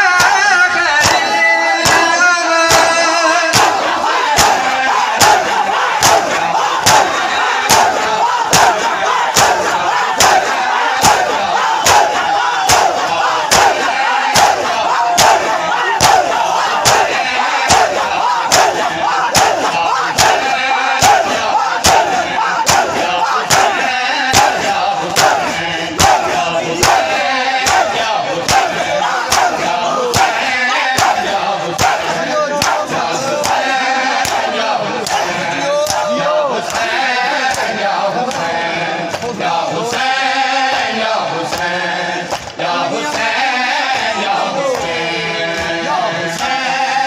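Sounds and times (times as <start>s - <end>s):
crowd chanting: 0.0s - 47.0s
hands striking chests in unison: 0.1s - 40.1s.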